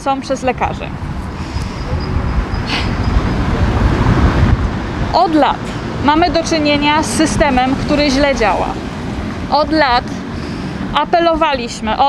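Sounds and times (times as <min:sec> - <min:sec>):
passing vehicle rumble: 0:00.0 - 0:12.0.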